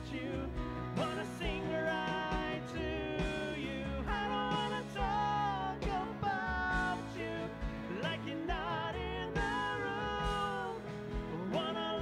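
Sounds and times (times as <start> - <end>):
acoustic guitar: 0.0 - 12.0
man singing: 0.0 - 12.0.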